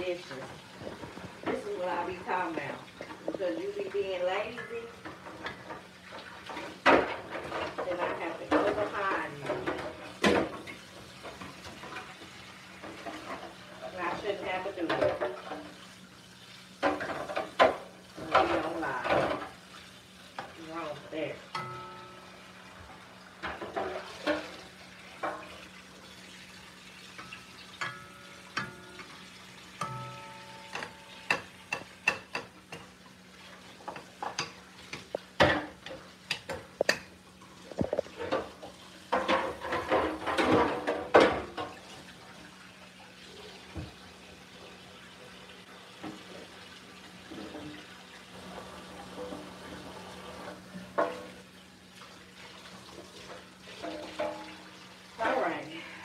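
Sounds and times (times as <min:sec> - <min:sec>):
pots and utensils clattering: 0:00.0 - 0:16.0, 0:16.8 - 0:42.6, 0:45.7 - 0:51.6, 0:52.3 - 0:56.0.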